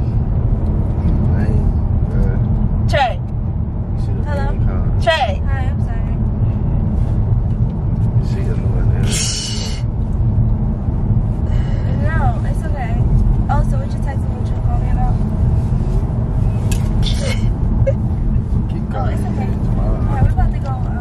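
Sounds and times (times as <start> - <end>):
car road and engine rumble: 0.0 - 21.0.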